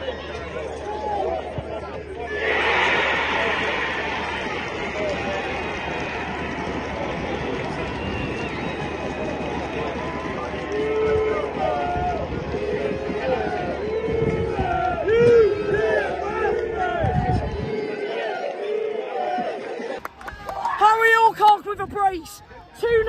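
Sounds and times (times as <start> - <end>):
crowd cheering: 0.0 - 23.0.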